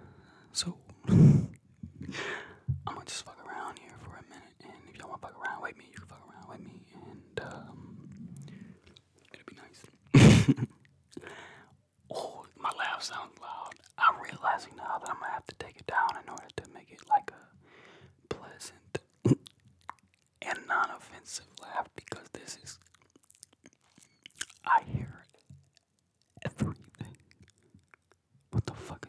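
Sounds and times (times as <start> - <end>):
man whispering: 0.0 - 1.3, 2.1 - 10.1, 12.1 - 17.6, 18.3 - 19.4, 20.4 - 22.9, 23.6 - 25.4, 26.4 - 27.3, 28.5 - 29.0
mouth clicks: 18.4 - 29.0.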